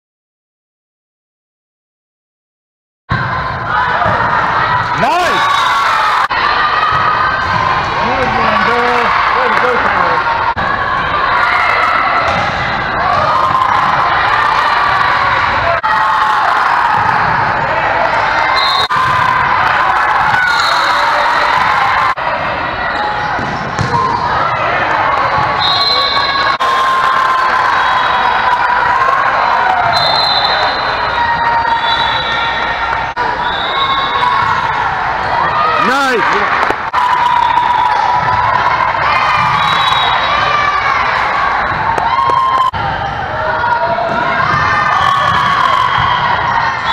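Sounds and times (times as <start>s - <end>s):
players calling and shouting: 3.1s - 46.9s
volleyballs being hit and bouncing: 11.8s - 14.7s, 23.2s - 25.6s, 35.8s - 40.2s, 41.1s - 42.8s.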